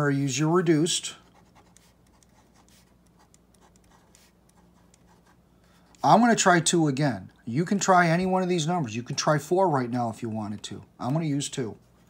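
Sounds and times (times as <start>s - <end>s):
low room hum: 0.0s - 12.0s
pen scratching on paper: 1.2s - 6.1s.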